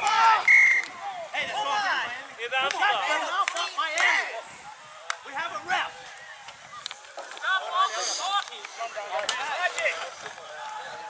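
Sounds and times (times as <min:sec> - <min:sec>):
outdoor background noise: 0:00.0 - 0:11.0.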